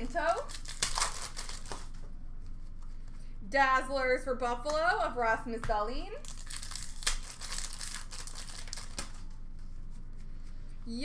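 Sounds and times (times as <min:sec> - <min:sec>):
trading cards rustling: 0:00.0 - 0:02.8, 0:06.2 - 0:09.4.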